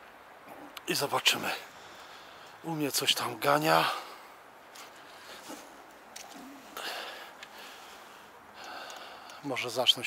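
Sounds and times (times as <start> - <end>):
faint clicks: 8.6 - 9.5.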